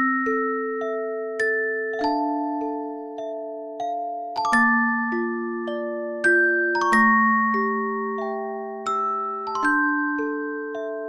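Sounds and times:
music box melody: 0.0 - 11.0.

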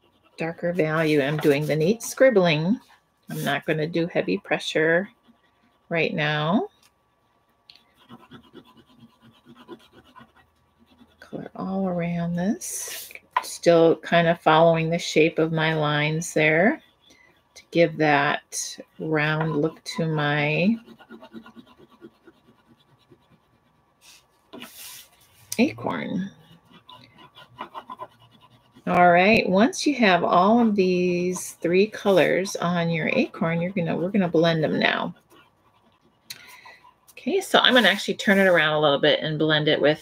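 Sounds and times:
oil pastel scratching on paper: 0.0 - 7.2, 7.8 - 39.1.

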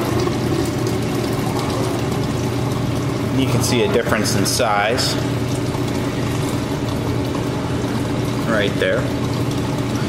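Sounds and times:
water pump humming: 0.0 - 10.0.

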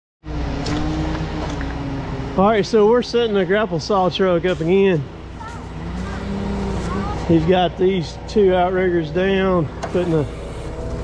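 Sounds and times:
diesel truck engine running: 0.2 - 11.0
faint steady whine: 0.3 - 11.0.

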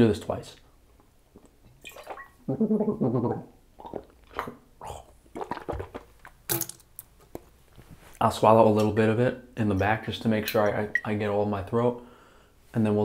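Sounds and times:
man spitting into sink: 1.4 - 6.1
man gargling: 2.4 - 5.8.

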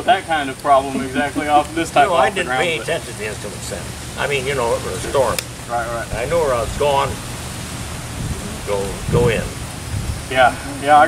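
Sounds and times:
man's voice: 0.0 - 7.2, 8.6 - 9.6
outdoor hiss and low rumble: 0.0 - 11.0.

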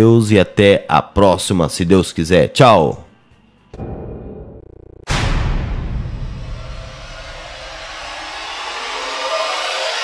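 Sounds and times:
low rumble of a hit: 3.8 - 9.7
whoosh of noise: 6.2 - 10.0.

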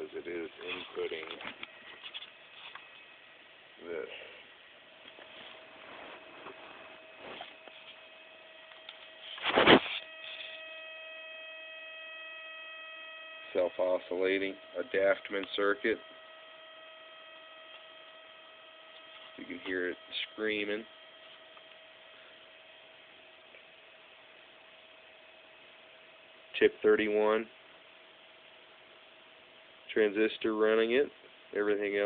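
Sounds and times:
high-pitched electronic whine: 0.0 - 25.6.

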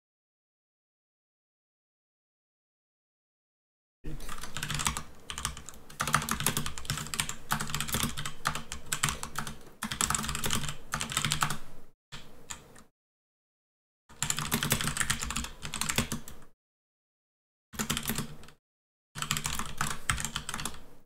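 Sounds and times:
fast typing on keyboard: 4.2 - 11.6, 14.1 - 16.5, 17.8 - 18.6, 19.2 - 20.9.

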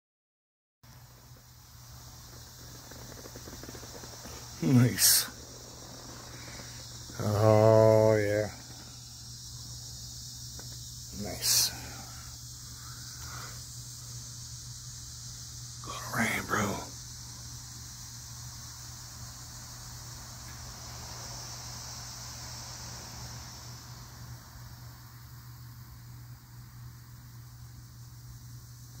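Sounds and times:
outdoor hiss with low hum: 0.8 - 29.0.

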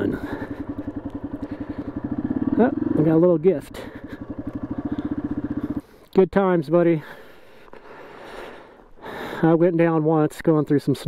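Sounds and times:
motorcycle engine running: 0.0 - 6.2.

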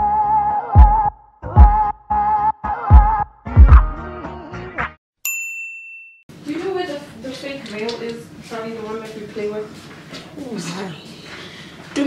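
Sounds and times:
background music: 0.0 - 5.0.

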